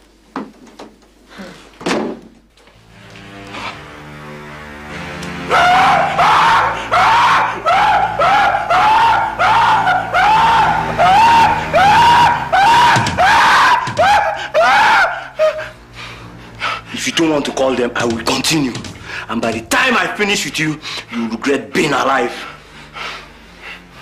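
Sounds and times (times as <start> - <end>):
background music score: 2.6 - 24.0.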